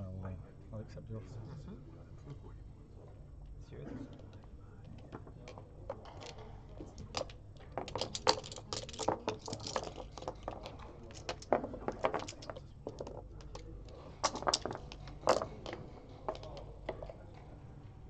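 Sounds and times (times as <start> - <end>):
backgammon checkers clicking: 5.0 - 17.2.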